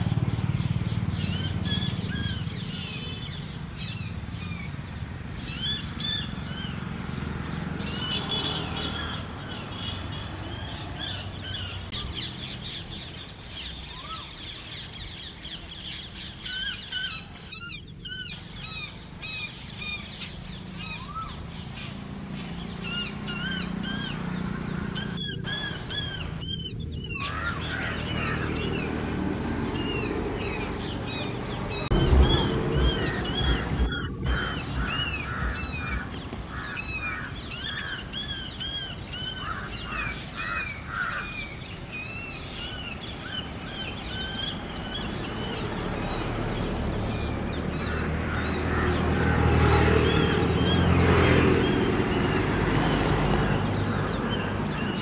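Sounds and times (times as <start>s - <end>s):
birds chirping and squawking: 0.0s - 55.0s
loud low thud and rumble: 31.9s - 36.5s.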